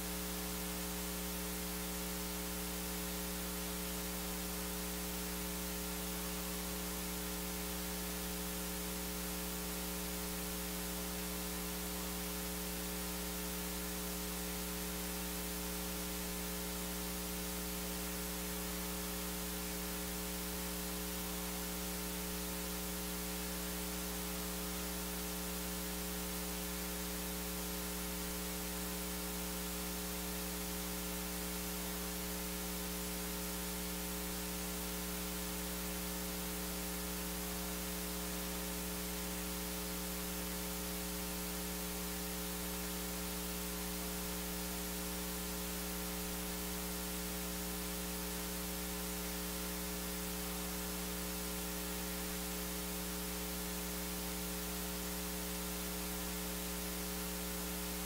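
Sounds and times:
electrical mains hum: 0.0 - 58.0.

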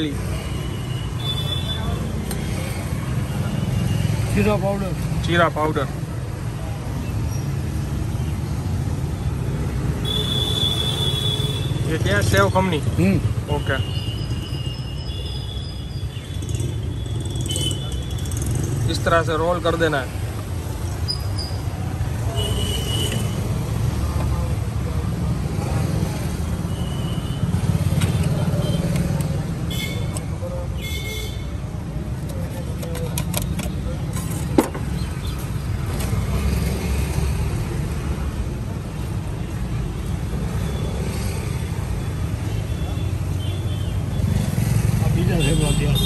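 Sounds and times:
road traffic rumble: 0.0 - 46.0.

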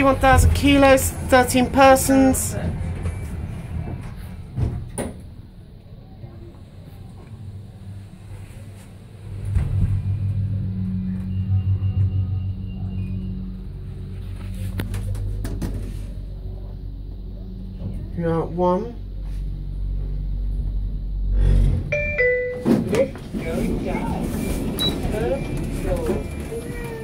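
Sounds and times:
lift drive humming and rumbling: 0.0 - 27.0.

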